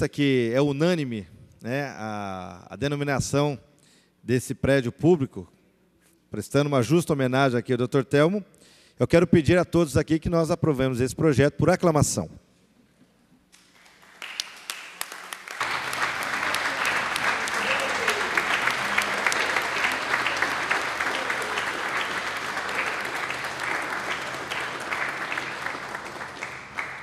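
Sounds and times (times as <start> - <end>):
crowd applauding: 13.6 - 27.0.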